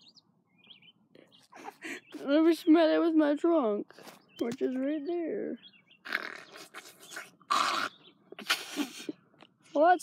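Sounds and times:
person sniffing loudly: 0:08.4 - 0:09.2.

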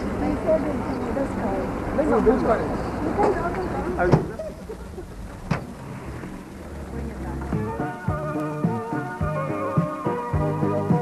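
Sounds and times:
people talking outdoors: 0:00.0 - 0:10.9.

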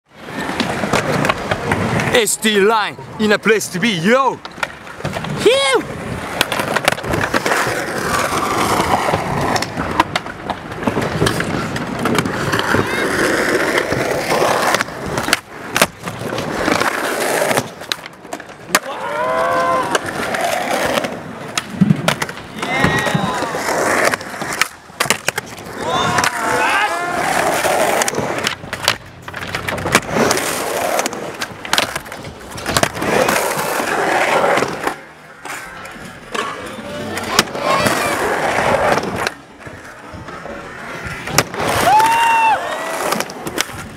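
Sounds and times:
skateboard wheels rolling on concrete: 0:00.0 - 0:43.9
skateboard clacks: 0:00.2 - 0:02.7, 0:04.3 - 0:43.9.

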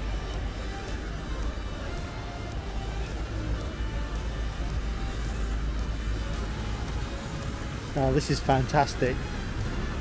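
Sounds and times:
faint music: 0:00.0 - 0:10.0
road traffic rumble: 0:00.0 - 0:10.0.

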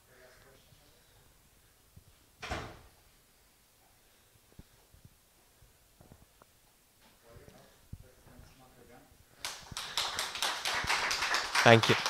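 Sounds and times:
audience applause: 0:09.4 - 0:12.0.

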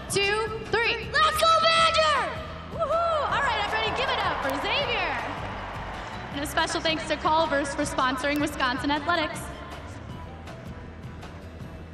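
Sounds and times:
music playing: 0:00.0 - 0:11.9
child shouting a cheer: 0:01.1 - 0:05.2.

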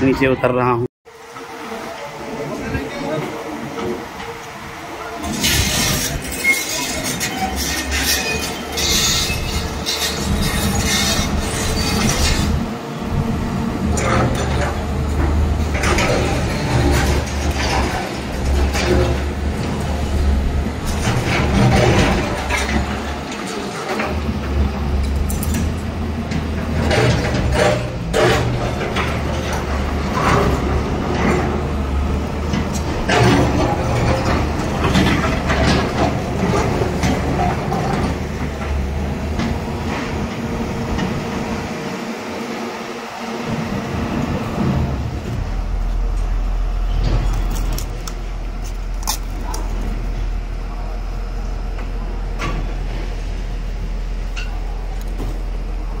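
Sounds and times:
excavator diesel engine running: 0:00.4 - 0:56.0.

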